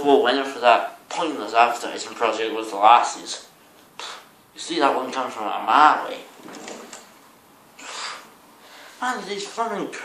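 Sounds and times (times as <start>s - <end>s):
curtain sliding rustle: 6.3s - 7.2s.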